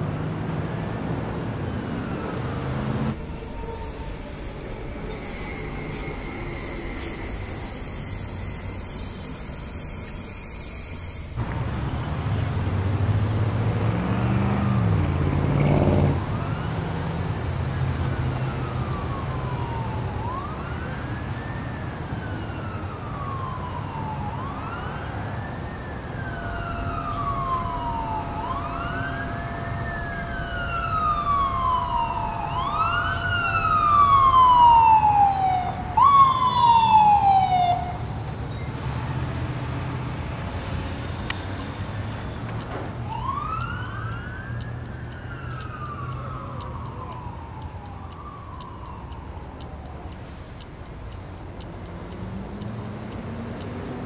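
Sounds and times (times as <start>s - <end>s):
emergency siren wailing: 0.9s - 38.4s, 39.7s - 54.0s.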